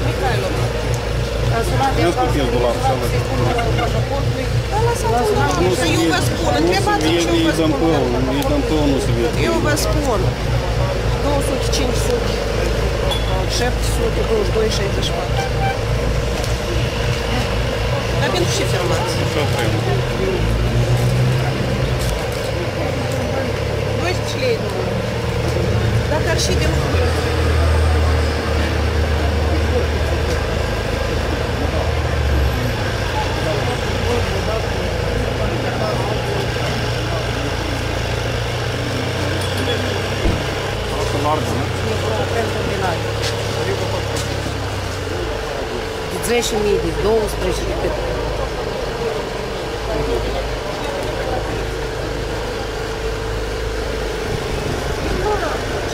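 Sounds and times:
outdoor low rumble: 0:00.0 - 0:55.9
street noise: 0:00.0 - 0:55.9
vehicle engine running: 0:00.0 - 0:55.9.

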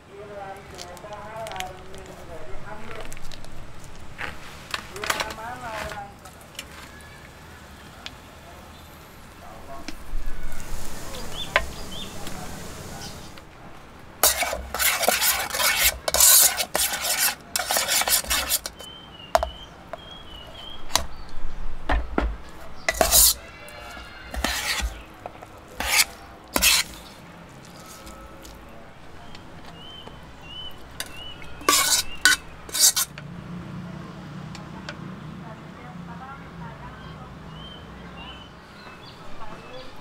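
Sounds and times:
metal utensil scraping metal pot: 0:14.2 - 0:19.5, 0:22.6 - 0:33.2.

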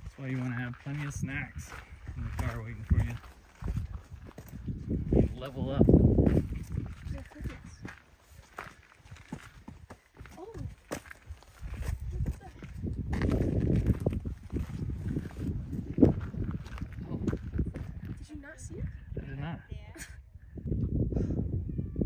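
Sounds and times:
footsteps on gravel: 0:00.0 - 0:18.6
wind on microphone: 0:00.0 - 0:22.0.

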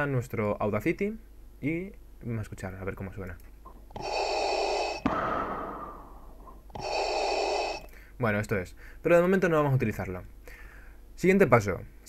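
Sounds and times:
respirator breathing hiss: 0:03.9 - 0:09.1.

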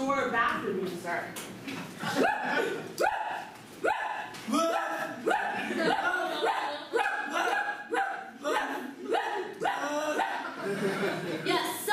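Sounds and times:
person imitating dog barks: 0:02.2 - 0:10.5.

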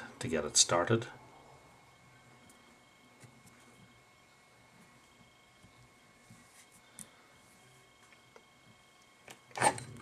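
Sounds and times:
man speaking: 0:00.0 - 0:01.2.

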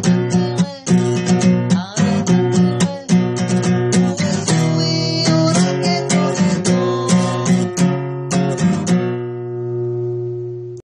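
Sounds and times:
acoustic guitar chord ringing: 0:00.0 - 0:10.8.

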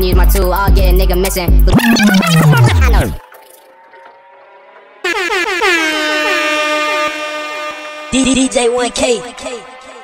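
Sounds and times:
air horn blasts: 0:05.0 - 0:08.3.

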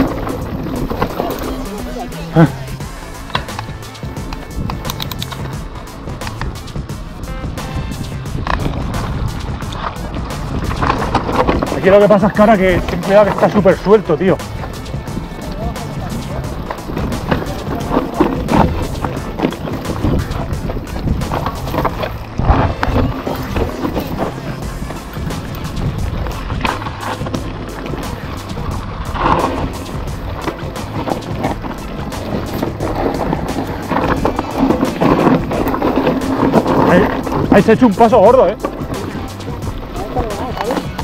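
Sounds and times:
tyres crunching over stones: 0:00.0 - 0:07.0, 0:08.2 - 0:41.0
wind on microphone: 0:02.3 - 0:41.0.

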